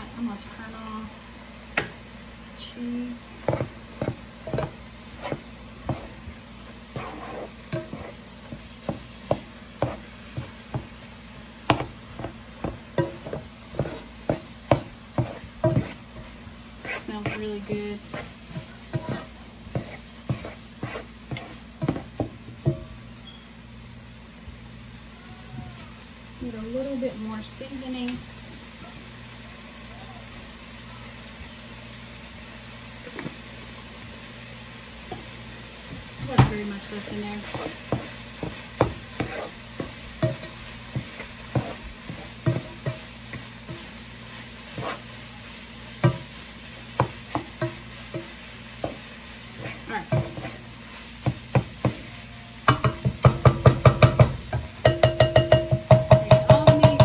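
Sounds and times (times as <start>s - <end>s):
utensil scraping a pot: 3.4s - 10.5s, 11.7s - 22.2s, 36.6s - 45.3s, 47.0s - 50.7s.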